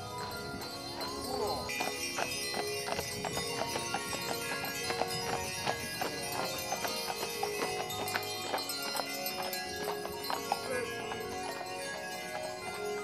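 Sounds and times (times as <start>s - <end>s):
hooves clip-clopping on pavement: 0.0s - 13.0s
music playing: 0.0s - 13.0s.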